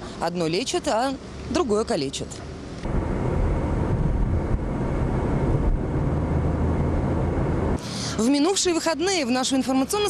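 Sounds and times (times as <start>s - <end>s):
car driving rumble inside cabin: 2.8s - 7.8s.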